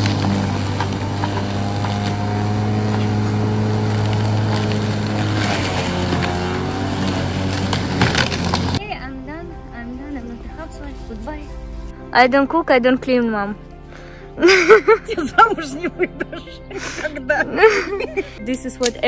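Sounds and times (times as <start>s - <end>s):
electric lawn mower running: 0.0s - 8.8s.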